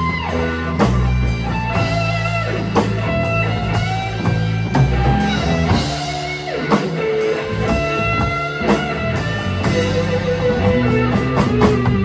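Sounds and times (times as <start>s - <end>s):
drum kit: 0.0s - 12.0s
electric bass line: 0.0s - 12.0s
electric guitar lead melody: 0.0s - 12.0s.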